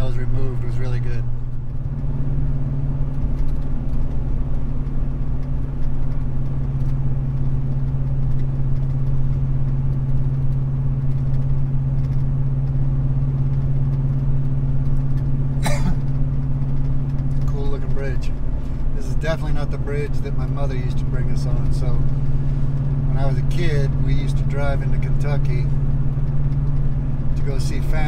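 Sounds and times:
road noise: 0.0 - 28.0
truck engine drone from inside cab: 0.0 - 28.0.

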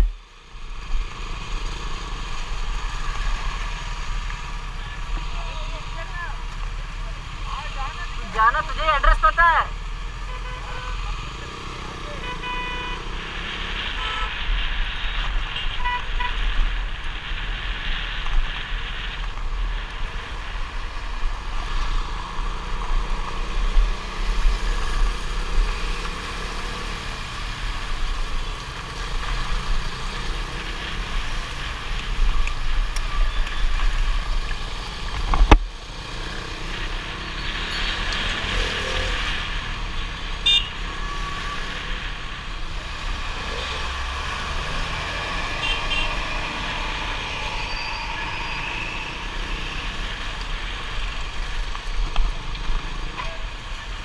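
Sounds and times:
motorcycle engine and road noise: 0.0 - 54.0
short horn beeps: 12.2 - 13.1
warbling vehicle horn: 12.2 - 13.1, 40.4 - 40.7, 45.6 - 46.3.

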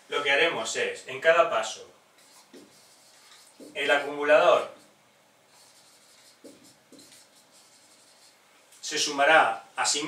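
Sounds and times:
faint scratching and rubbing: 2.2 - 8.4.

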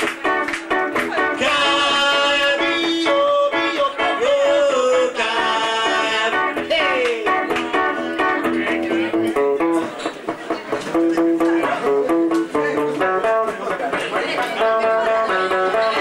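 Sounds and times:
guitar playing: 0.0 - 16.0
man singing long notes: 1.3 - 7.5.

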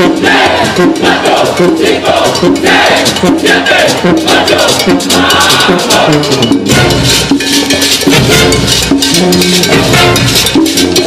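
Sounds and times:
brass holding chords: 0.0 - 11.0
quick steady drumming: 0.0 - 11.0.

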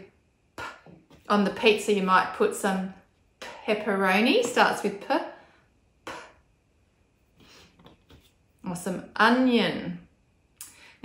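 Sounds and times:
woman speaking: 0.6 - 5.4, 8.6 - 10.1.

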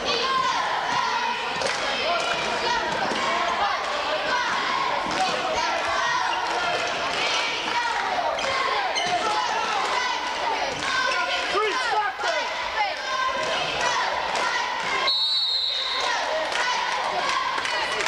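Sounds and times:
referee's whistle blast: 15.1 - 16.1.

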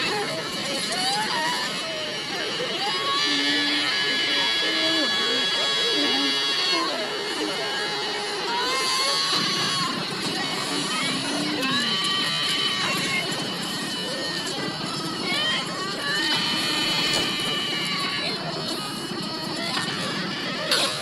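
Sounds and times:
cartoon voices screaming: 0.0 - 7.0, 8.3 - 18.5.

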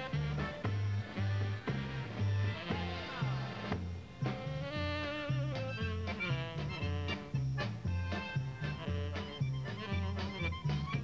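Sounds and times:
polka band playing: 0.0 - 11.0.

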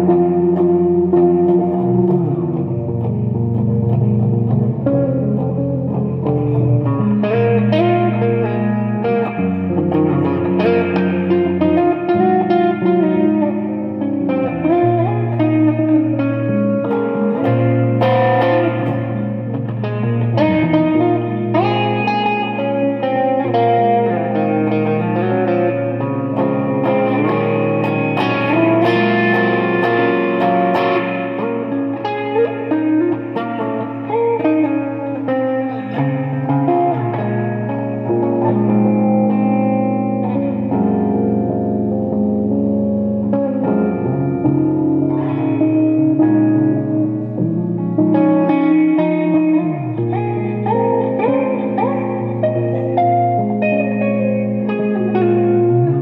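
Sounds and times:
electric guitar with reverb: 0.0 - 56.0.

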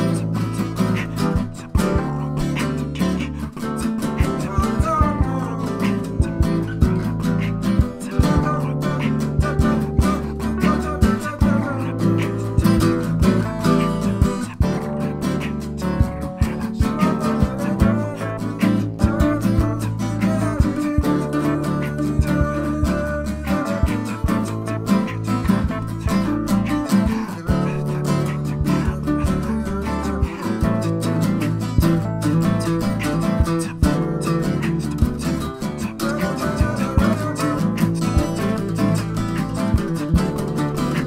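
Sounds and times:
acoustic guitars strummed and plucked: 0.0 - 41.0
bass line: 0.0 - 41.0
percussive beat: 0.0 - 41.0.

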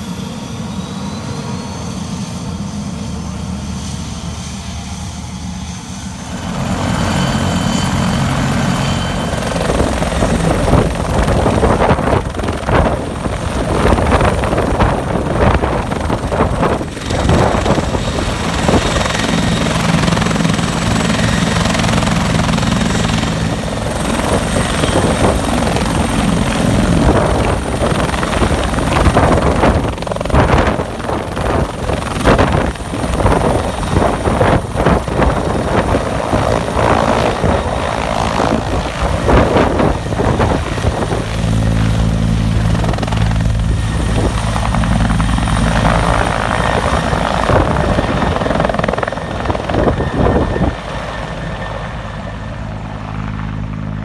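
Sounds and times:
helicopter engines and rotors: 0.0 - 54.0.

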